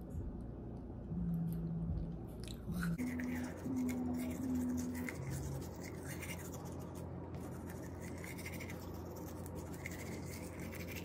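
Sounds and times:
low hum: 0.0 - 11.0
toothbrush scrubbing teeth: 2.4 - 11.0.

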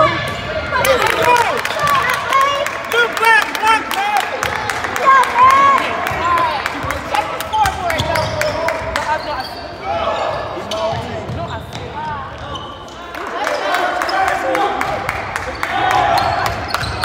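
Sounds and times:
basketball court noises: 0.0 - 17.0.

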